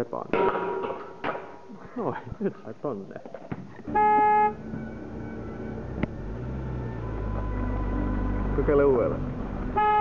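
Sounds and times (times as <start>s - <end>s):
car horn toot: 3.9s - 4.9s, 9.7s - 10.0s.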